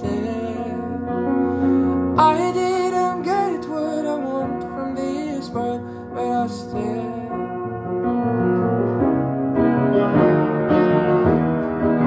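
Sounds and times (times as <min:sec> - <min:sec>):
detuned piano chords: 0:00.0 - 0:12.0.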